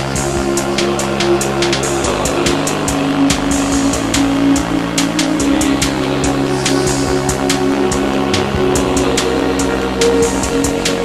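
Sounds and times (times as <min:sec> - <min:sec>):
electronic music with drum machine: 0:00.0 - 0:11.0
falling sweeping synth sound: 0:00.0 - 0:11.0.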